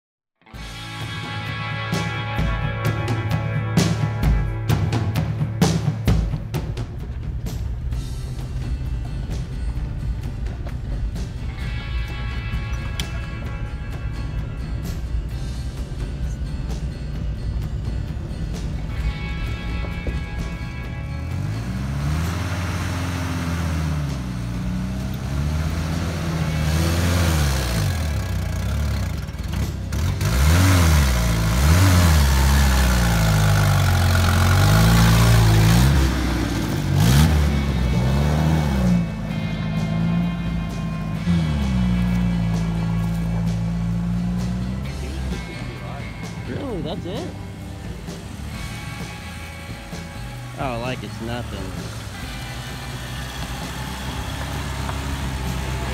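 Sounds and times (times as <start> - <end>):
off-road engines revving: 0.6 - 55.9.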